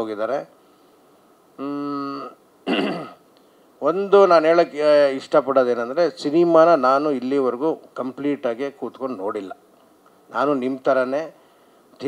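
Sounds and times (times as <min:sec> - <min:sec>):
man speaking into a microphone: 0:00.0 - 0:00.6, 0:03.8 - 0:09.6, 0:10.3 - 0:11.4
man clearing throat: 0:01.6 - 0:03.2.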